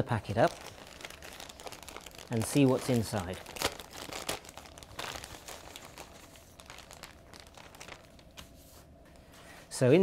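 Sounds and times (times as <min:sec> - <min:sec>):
envelope crinkling and rustling: 0:00.2 - 0:08.6.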